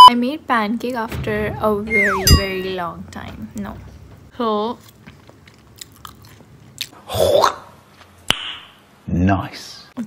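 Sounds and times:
person chewing food: 4.8 - 7.0.

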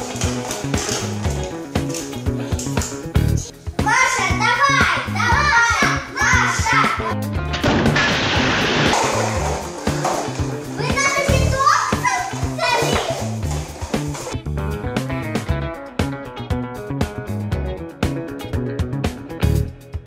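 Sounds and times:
background music: 0.0 - 20.0
children's excited voices: 3.8 - 7.3, 10.8 - 13.4
paper cups collapsing clatter: 7.8 - 10.6.

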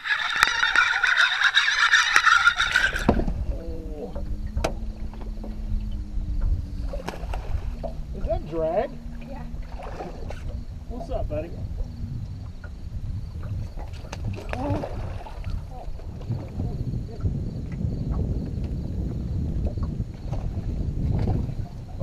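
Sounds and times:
steady low hum: 0.0 - 22.0
wind rumbling on microphone: 0.0 - 22.0.

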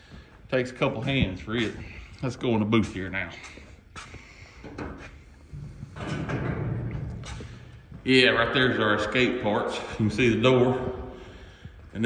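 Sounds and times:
door rumbling scrape: 5.5 - 7.7.

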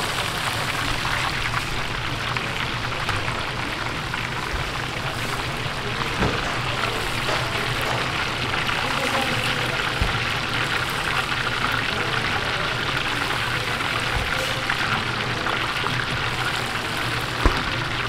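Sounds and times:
chicken deep-frying in oil: 0.0 - 18.0.

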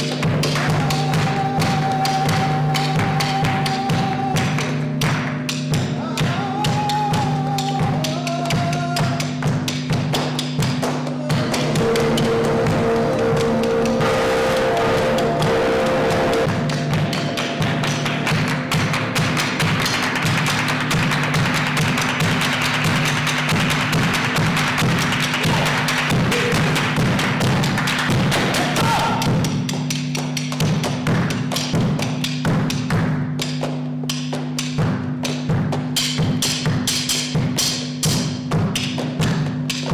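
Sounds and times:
fast hand clapping: 0.0 - 39.9
man singing flamenco: 0.7 - 4.6, 6.0 - 9.4
droning electric guitars: 11.2 - 21.7.

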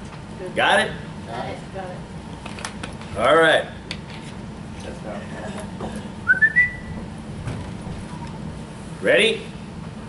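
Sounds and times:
person whistling rising notes: 6.2 - 6.9.

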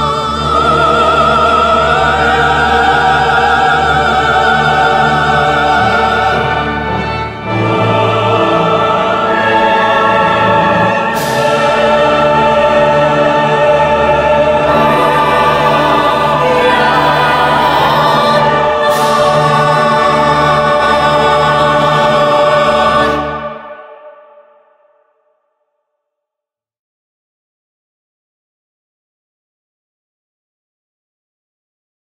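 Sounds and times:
choir and orchestra performing: 0.0 - 24.4.

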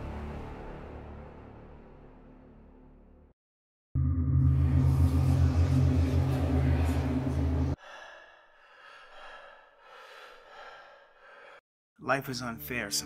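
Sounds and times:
glitch sound effect hum: 4.0 - 7.8
man gasping and breathing: 7.8 - 11.7.

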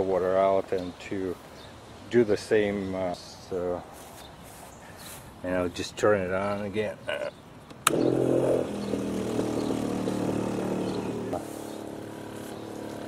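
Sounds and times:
electric pump motor humming: 7.8 - 13.0.

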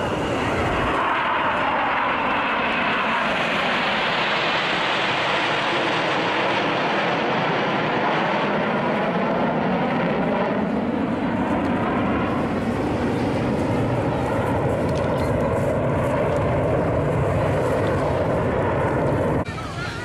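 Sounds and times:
jets flying overhead: 0.0 - 20.0.

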